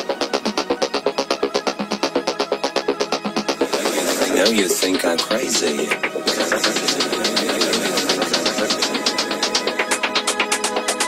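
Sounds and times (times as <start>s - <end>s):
hi-hat ticks: 0.1s - 11.0s.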